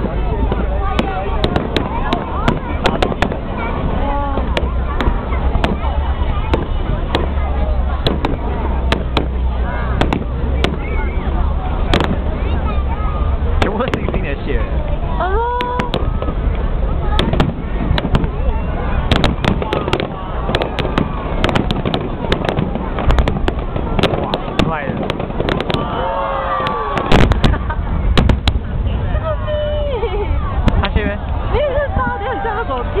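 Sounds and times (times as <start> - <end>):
fireworks bangs and crackles: 0.0 - 33.0
people's voices: 0.0 - 33.0.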